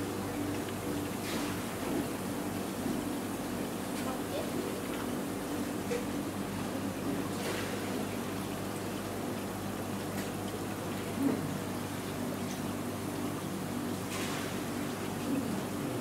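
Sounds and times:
aquarium pump hum: 0:00.0 - 0:16.0.

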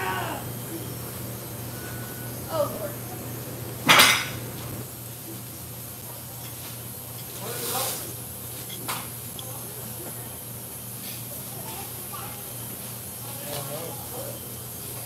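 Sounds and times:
faint voices: 0:00.0 - 0:06.5, 0:07.2 - 0:15.0.

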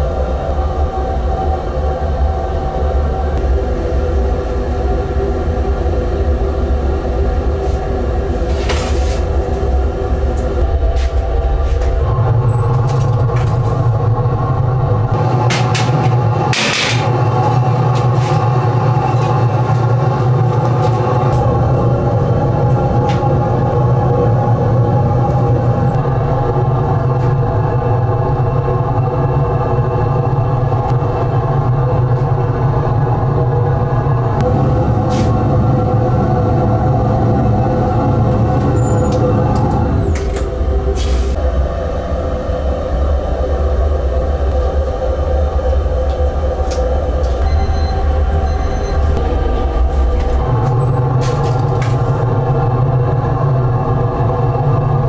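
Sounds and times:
gas burners rumbling: 0:00.0 - 0:55.0.

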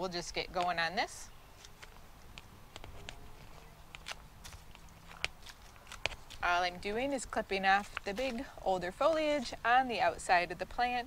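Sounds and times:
hand pruners snipping stems: 0:00.3 - 0:08.5.

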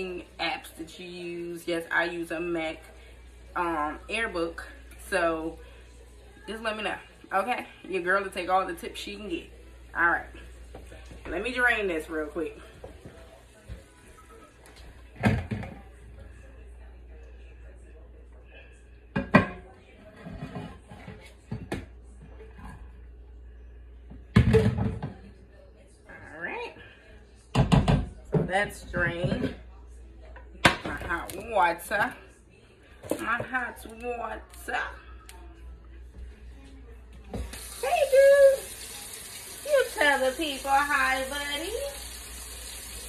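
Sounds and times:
water running from tap: 0:37.4 - 0:43.0.

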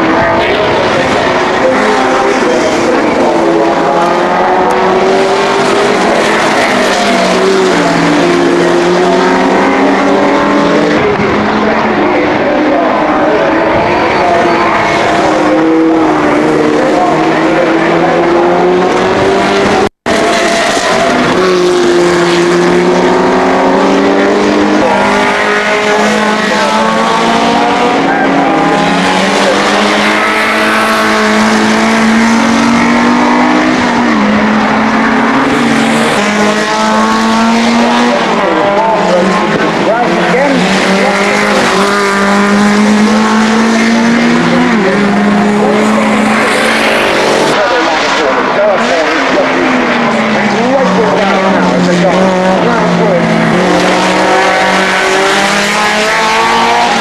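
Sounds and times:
racing car engines: 0:00.0 - 0:57.0.

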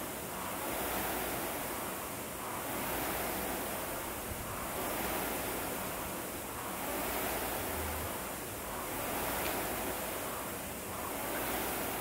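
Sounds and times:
rowing machine flywheel whooshing: 0:00.0 - 0:12.0.

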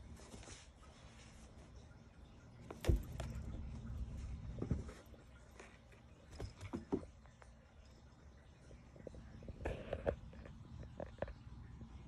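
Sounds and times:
cats scuffling in a cardboard box: 0:00.0 - 0:01.8, 0:02.6 - 0:07.2.

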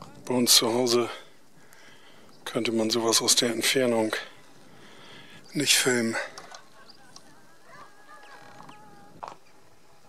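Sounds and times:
quiet outdoor background: 0:00.0 - 0:10.0
faint bird calls: 0:04.3 - 0:09.7.

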